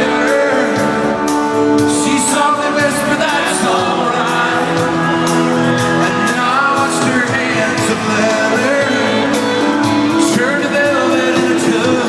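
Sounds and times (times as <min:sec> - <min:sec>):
live country band: 0:00.0 - 0:12.0
person singing long sliding notes: 0:00.0 - 0:12.0.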